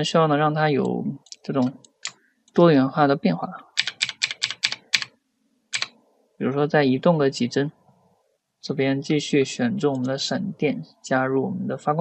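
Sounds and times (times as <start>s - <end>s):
computer keyboard keys tapped: 3.8s - 5.1s, 5.7s - 5.9s.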